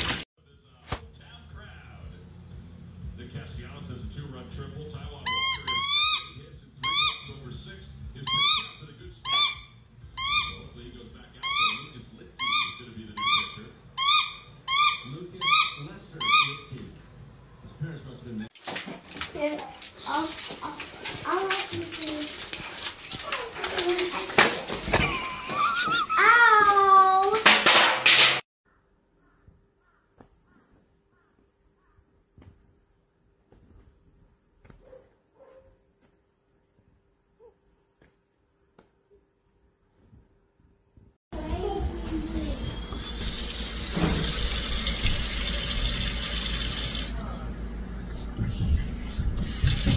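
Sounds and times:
rubber squeaky ball squeaking: 5.3s - 7.3s, 8.3s - 10.7s, 11.4s - 16.7s.

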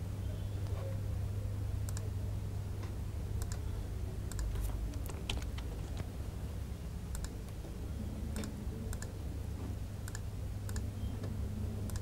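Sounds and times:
steady low hum: 0.0s - 12.0s
mouse and keyboard clicks: 4.3s - 6.1s.

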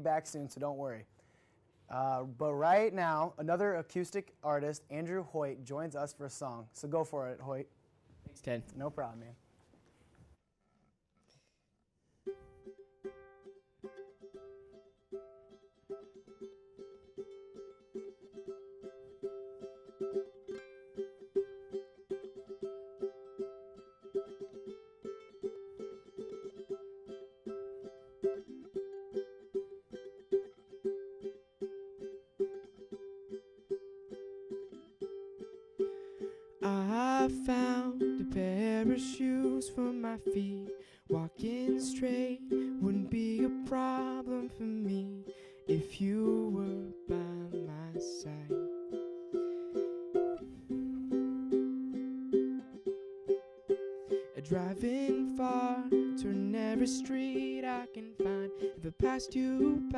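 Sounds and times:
ukulele strumming: 12.2s - 59.9s
man singing: 36.6s - 48.7s, 54.2s - 59.9s.

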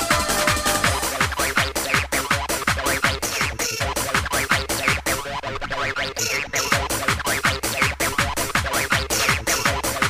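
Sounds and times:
hard dance music: 0.0s - 10.0s.

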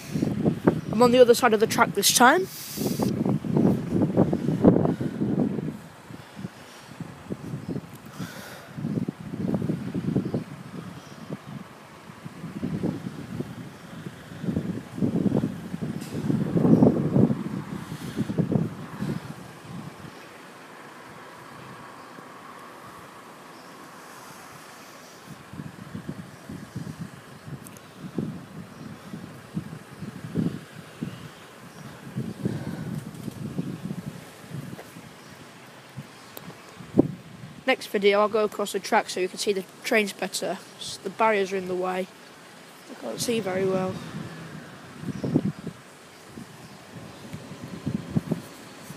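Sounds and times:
gusty wind buffeting microphone: 0.0s - 22.0s, 24.1s - 48.9s.

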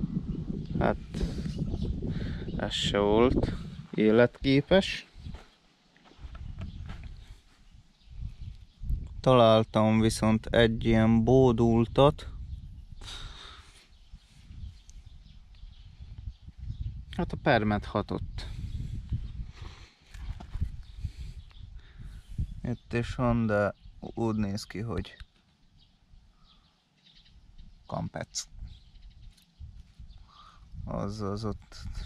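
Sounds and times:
footsteps on dry soil: 3.8s - 7.8s.

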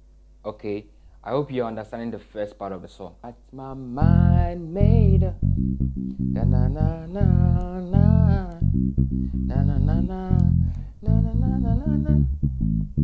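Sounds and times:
man humming: 3.7s - 12.4s
electric bass plucking: 4.0s - 13.0s.

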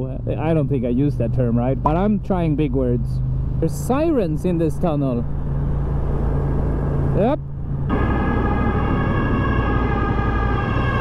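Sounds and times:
ambulance siren: 7.9s - 11.0s.

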